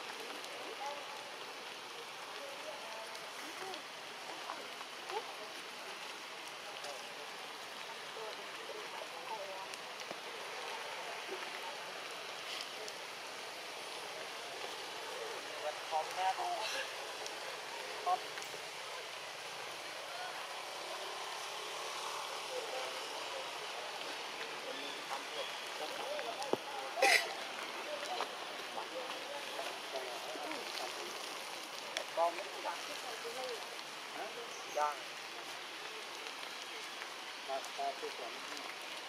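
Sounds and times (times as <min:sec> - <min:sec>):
forest background hiss: 0:00.0 - 0:39.0.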